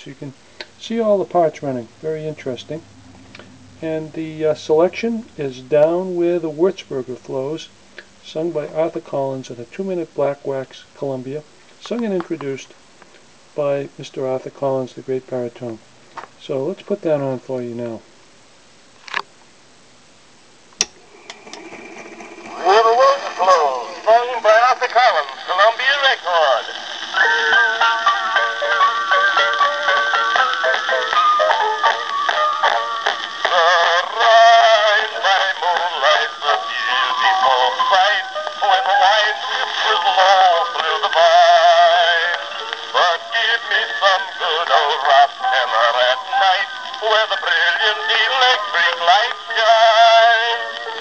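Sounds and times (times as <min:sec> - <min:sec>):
early recording of baritone song: 0:00.0 - 0:51.0.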